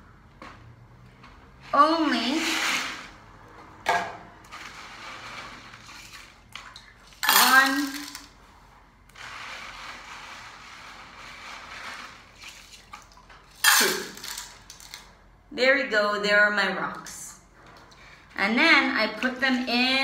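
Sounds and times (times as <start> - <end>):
stones clattering into metal tin: 7.2 - 8.3, 13.5 - 15.0.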